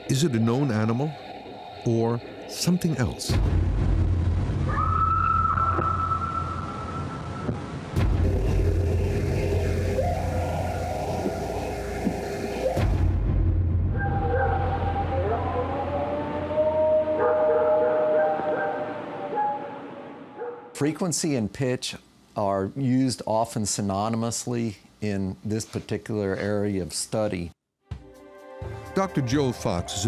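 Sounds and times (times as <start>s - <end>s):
long howls: 4.6s - 7.8s, 9.1s - 13.0s, 13.9s - 20.7s.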